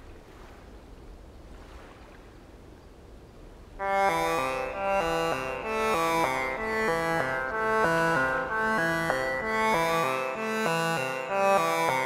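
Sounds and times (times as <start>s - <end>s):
outdoor ambience rumble and hiss: 0.0s - 3.9s
music with held chords: 3.8s - 12.0s.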